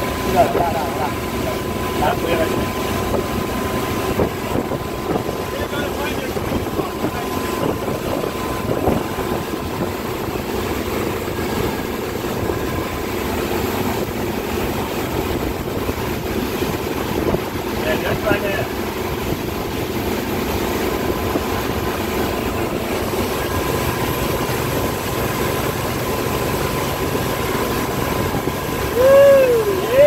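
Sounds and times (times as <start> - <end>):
boat engine running: 0.0 - 30.0
wake water rushing: 0.0 - 30.0.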